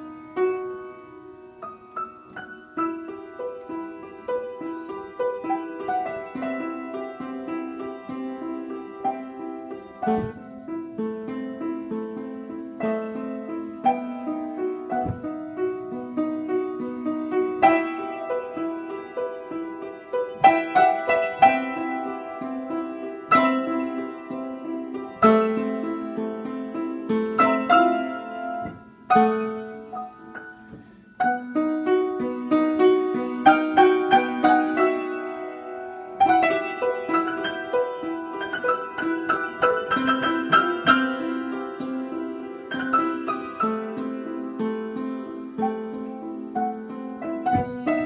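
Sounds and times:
upright piano playing: 0.0 - 48.0.

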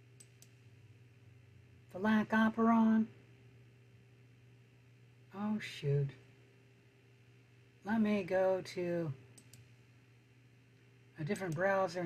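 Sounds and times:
computer mouse clicks: 0.2 - 0.6, 9.3 - 9.7.

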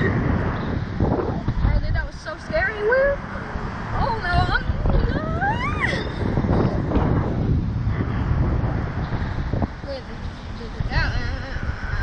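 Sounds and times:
wind buffeting microphone: 0.0 - 12.0
person squealing: 5.1 - 6.1.

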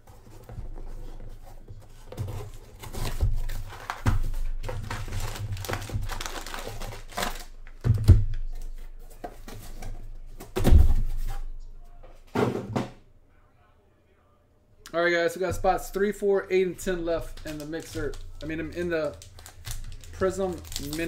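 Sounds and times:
plastic packaging crinkling: 2.2 - 7.8, 17.2 - 21.0.

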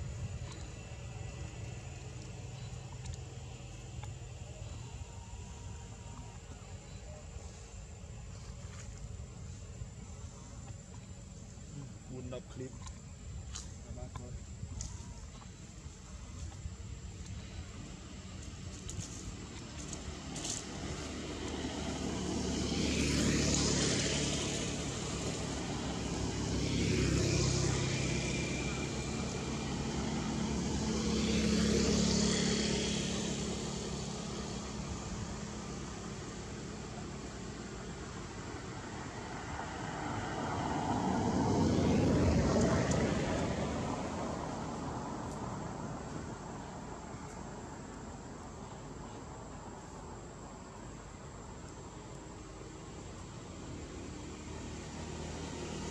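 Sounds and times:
vehicles passing by: 0.0 - 55.9.

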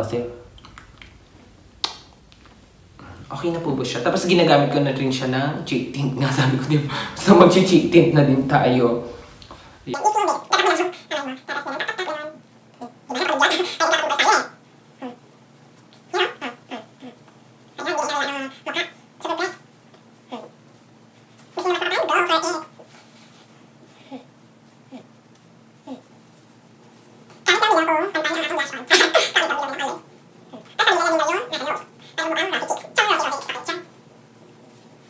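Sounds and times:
man wordless vocal noise: 0.0 - 12.2
man vocalizing without words: 5.6 - 11.3.

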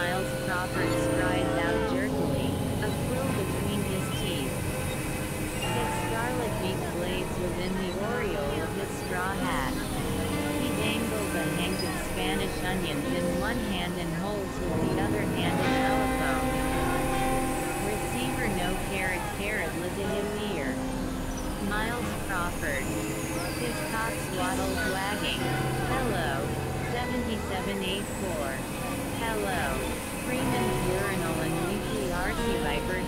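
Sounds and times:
spoken-word voice: 0.0 - 4.5, 5.7 - 20.8, 21.6 - 23.0, 23.6 - 28.6, 29.2 - 33.0
synthesizer drones: 0.0 - 33.0.

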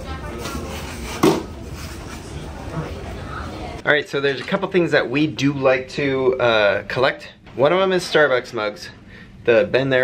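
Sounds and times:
faint crowd voices: 0.0 - 4.5.

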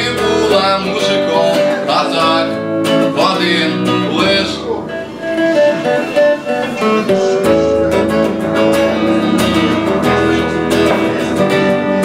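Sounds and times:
clean electric guitar: 0.0 - 12.0.

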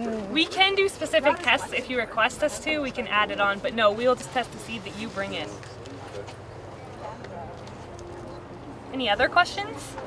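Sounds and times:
faint murmur of voices: 0.0 - 10.0.

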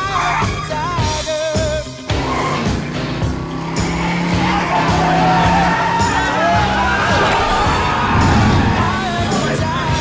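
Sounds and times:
lorry tyres skidding: 2.0 - 10.0.

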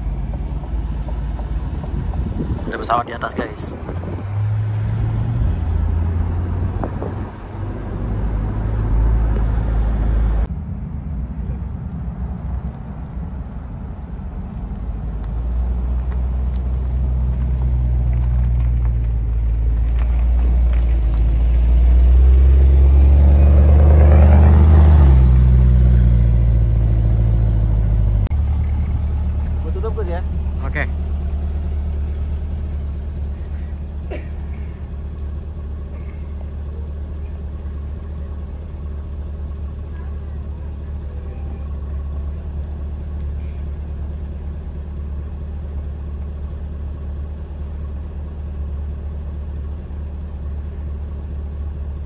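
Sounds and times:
car engine passing by: 0.0 - 44.4.

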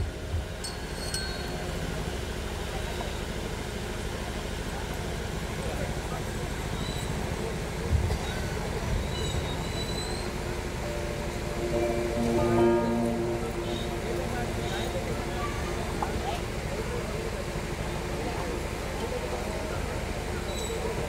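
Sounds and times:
faint murmur: 1.3 - 21.0
held pitched notes: 10.7 - 18.2
low hum: 10.8 - 18.1.

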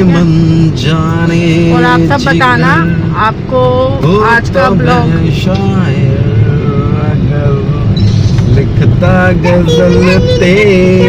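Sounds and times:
car engine and road rumble: 0.0 - 11.0
man singing long notes: 9.0 - 11.0.

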